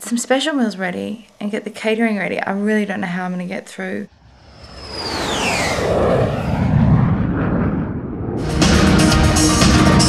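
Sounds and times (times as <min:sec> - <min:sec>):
whooshing rush with falling whistle: 0:04.1 - 0:08.4
low rumble: 0:04.1 - 0:08.9.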